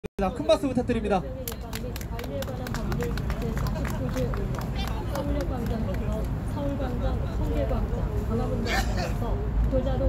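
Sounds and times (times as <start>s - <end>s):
voices: 1.2s - 10.0s
hand claps: 1.4s - 6.1s.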